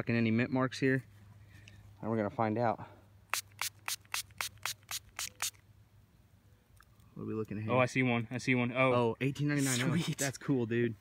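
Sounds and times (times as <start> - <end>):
spray bottle squirting water: 3.3 - 5.6.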